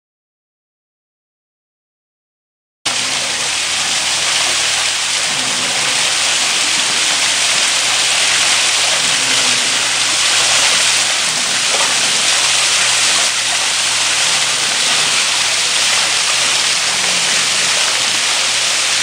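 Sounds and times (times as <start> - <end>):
small waterfall splashing on rocks: 2.9 - 19.0.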